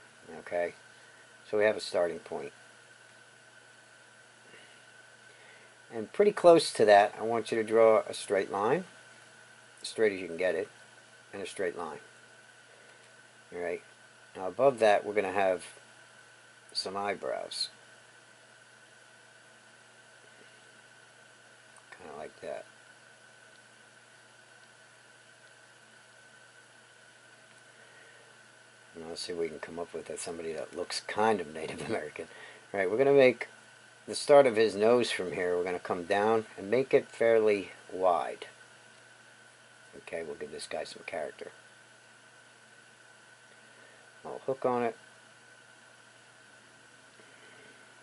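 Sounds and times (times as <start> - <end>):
faint hiss: 0.0 - 48.0
thin high hum: 0.0 - 48.0.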